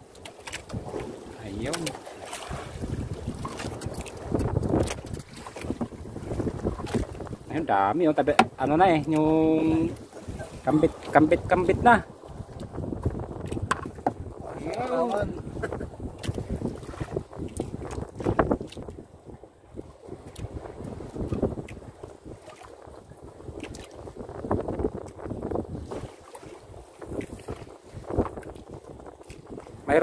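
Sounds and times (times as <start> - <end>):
fishing net hauled by hand: 0.0 - 7.2
wind buffeting microphone: 0.0 - 30.0.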